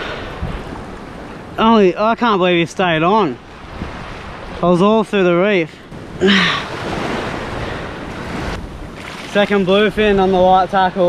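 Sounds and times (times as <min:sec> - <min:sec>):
wind on microphone: 0:00.0 - 0:01.6, 0:03.6 - 0:04.6, 0:05.9 - 0:10.8
waves washing on sand: 0:00.0 - 0:11.0.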